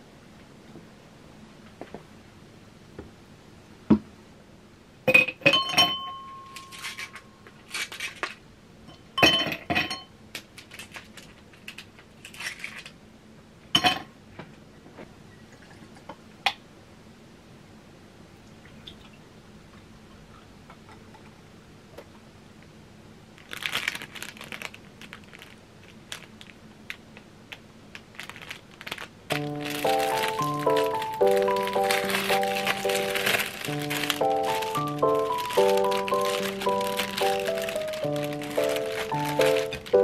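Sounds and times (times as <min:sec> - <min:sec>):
plastic bag crinkling: 0:23.4 - 0:40.0
light background music: 0:29.3 - 0:40.0.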